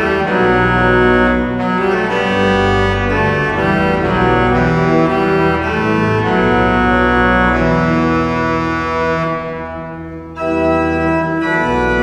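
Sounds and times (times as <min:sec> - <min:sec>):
pipe organ sustained chord: 0:00.0 - 0:12.0.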